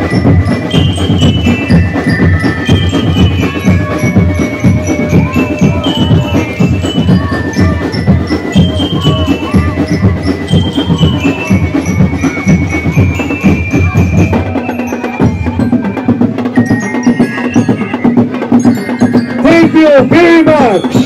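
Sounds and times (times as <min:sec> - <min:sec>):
drums beating fast rhythm: 0:00.0 - 0:21.0
high ringing melody: 0:00.0 - 0:21.0.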